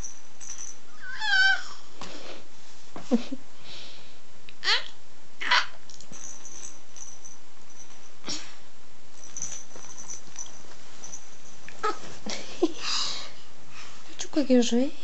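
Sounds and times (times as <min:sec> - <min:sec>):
baby squealing: 0:01.0 - 0:01.8, 0:04.6 - 0:05.8, 0:11.8 - 0:12.0.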